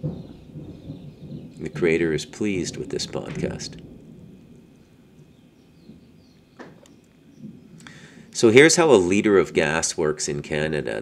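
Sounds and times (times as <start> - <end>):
distant thunder rumble: 0.0 - 11.0.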